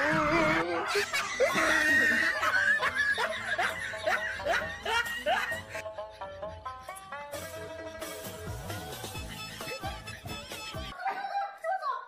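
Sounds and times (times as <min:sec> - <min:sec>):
man laughing: 0:00.1 - 0:05.9.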